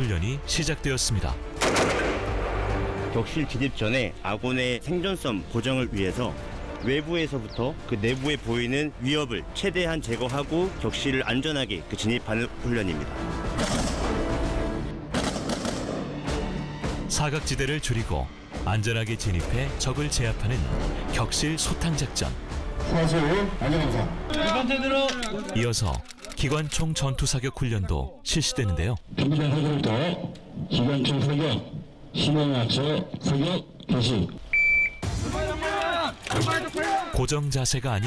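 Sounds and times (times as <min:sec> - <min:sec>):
man's voice: 0:00.0 - 0:01.4, 0:17.1 - 0:34.3, 0:35.2 - 0:38.0
background music: 0:00.0 - 0:33.8, 0:34.4 - 0:38.0
rifle shots: 0:01.6 - 0:02.5, 0:13.6 - 0:14.2, 0:15.1 - 0:16.1
high electronic beep: 0:34.5 - 0:35.1.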